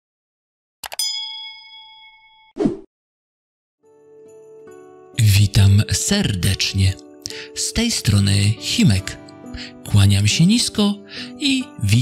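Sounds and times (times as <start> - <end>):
bright bell ding: 0.9 - 2.6.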